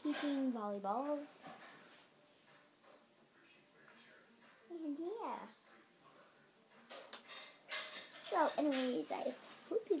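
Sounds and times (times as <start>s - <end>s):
objects clattering and rustling on desk: 1.3s - 3.0s.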